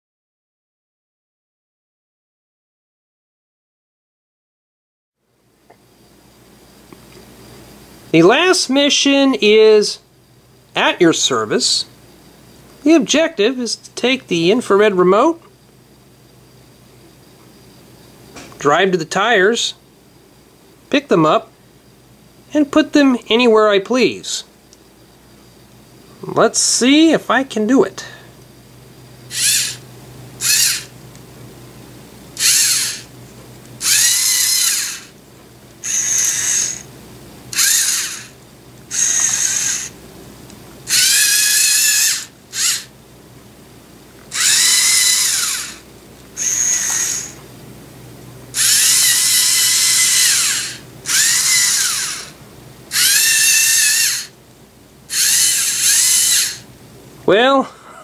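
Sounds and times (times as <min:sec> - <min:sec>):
robot servo motors whining: 0:29.3 - 0:29.8, 0:30.4 - 0:30.9, 0:32.4 - 0:33.1, 0:33.8 - 0:35.1, 0:35.8 - 0:36.9, 0:37.5 - 0:40.0, 0:40.9 - 0:42.9, 0:44.3 - 0:45.8, 0:46.4 - 0:47.4, 0:48.5 - 0:54.3, 0:55.1 - 0:56.7.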